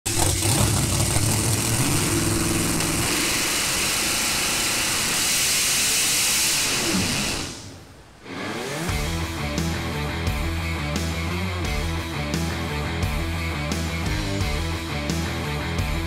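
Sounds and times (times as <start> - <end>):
drag racing car engine running: 0.0 - 9.9.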